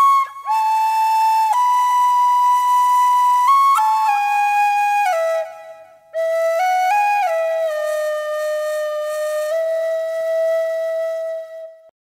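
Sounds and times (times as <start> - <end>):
solo flute held notes: 0.0 - 11.9.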